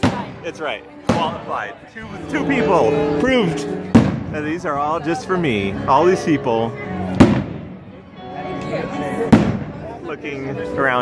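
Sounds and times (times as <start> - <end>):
background music: 0.0 - 11.0
crowd chatter: 0.0 - 11.0
firework bang: 3.9 - 4.4, 7.2 - 7.8, 9.3 - 9.8.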